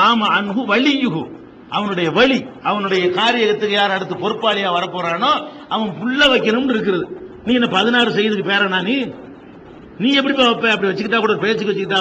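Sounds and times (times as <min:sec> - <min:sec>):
man speaking into microphone: 0:00.0 - 0:12.0.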